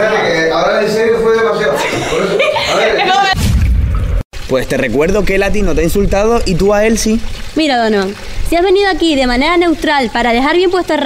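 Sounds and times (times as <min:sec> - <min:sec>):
people talking: 0:00.0 - 0:03.4, 0:04.5 - 0:11.0
chuckling laughter: 0:01.7 - 0:03.4.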